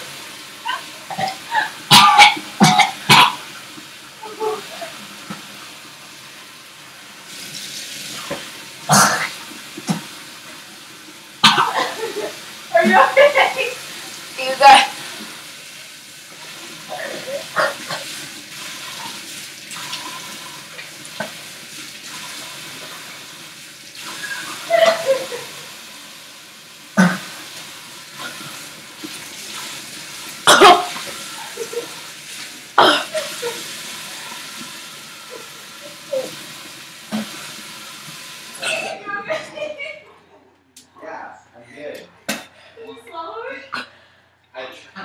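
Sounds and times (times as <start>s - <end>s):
person coughing and gagging: 1.1s - 3.5s, 8.9s - 9.3s, 11.4s - 12.3s, 30.4s - 31.0s, 32.8s - 33.6s, 38.6s - 39.2s.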